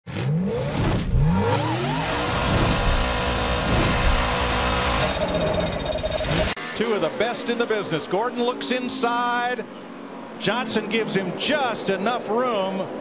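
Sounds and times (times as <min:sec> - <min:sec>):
race car engine revving: 0:00.1 - 0:05.5.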